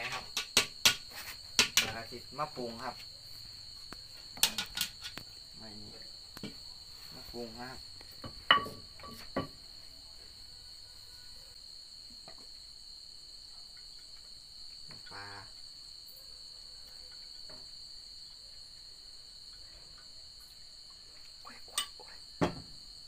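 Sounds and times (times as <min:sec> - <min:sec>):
crickets chirping: 0:00.0 - 0:23.0
sharp knock: 0:22.4 - 0:22.8.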